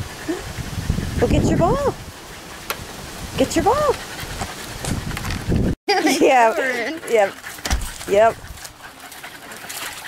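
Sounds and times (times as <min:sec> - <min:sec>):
water sloshing: 0:06.8 - 0:10.0
heavy thump: 0:07.6 - 0:08.0.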